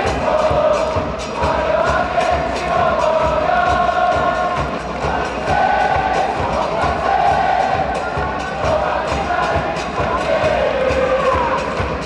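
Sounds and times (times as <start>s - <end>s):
crowd chanting: 0.0s - 12.0s
steady drumbeat: 0.0s - 12.0s.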